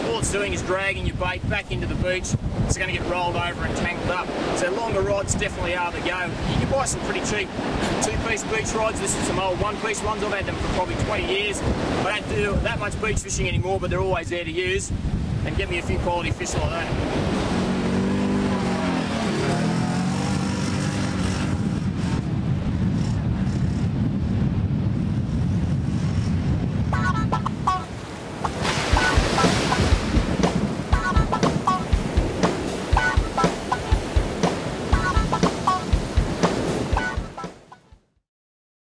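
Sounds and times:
wind on microphone: 0.0s - 37.4s
theme tune with steady beat: 28.9s - 38.1s.

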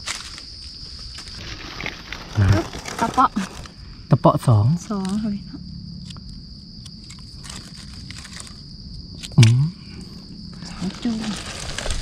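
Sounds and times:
leaf litter and twigs crackling: 0.0s - 3.9s, 6.9s - 9.4s, 10.5s - 12.0s
forest insects droning: 0.0s - 12.0s.

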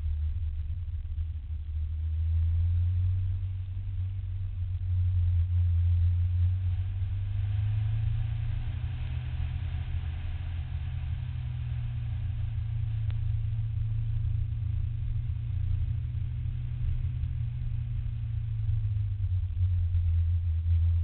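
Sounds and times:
car engine drone: 0.0s - 21.0s.

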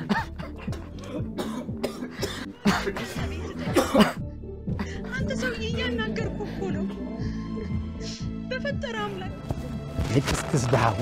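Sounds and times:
man coughing hard: 0.0s - 5.0s
background music with low notes: 0.0s - 11.0s.

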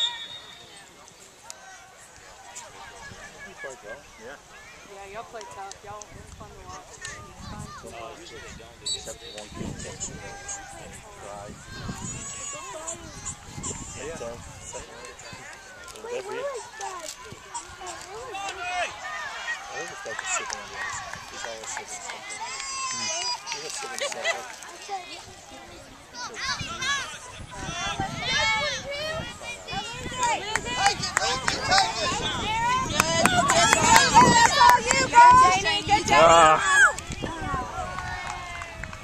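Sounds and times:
people talking and calling: 0.0s - 39.0s
faint clicks: 5.3s - 6.4s
long drawn-out shout: 26.2s - 39.0s.

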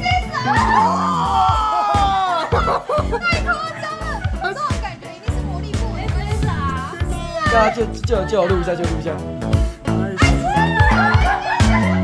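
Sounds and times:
background music: 0.0s - 12.0s
people whooping excitedly: 0.4s - 3.0s, 10.2s - 12.0s.

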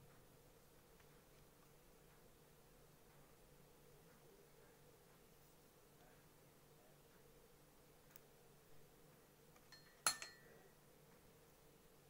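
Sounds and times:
sharp clink of hard objects: 9.7s - 10.5s.

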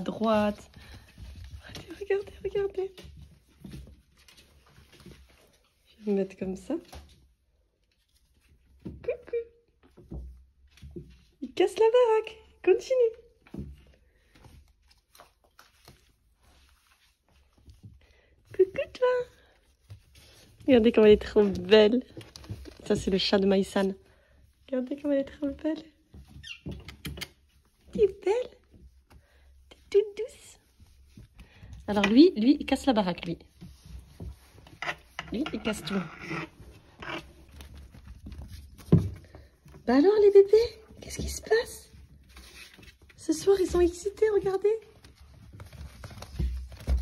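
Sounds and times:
kittens scuffling on fabric: 0.0s - 8.9s, 13.2s - 47.0s.

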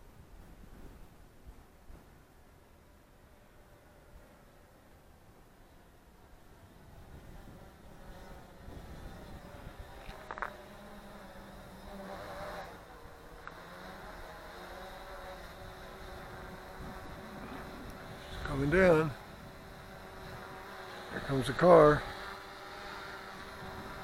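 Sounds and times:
drone propellers buzzing: 2.9s - 24.0s.

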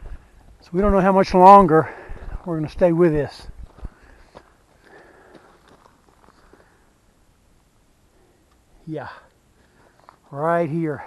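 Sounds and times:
footsteps on dirt trail: 0.0s - 6.8s.

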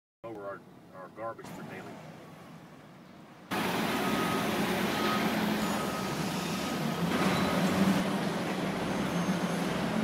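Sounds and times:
diesel vehicle running: 0.4s - 10.0s
reversing alarm beeping: 3.5s - 8.0s, 8.8s - 9.8s.

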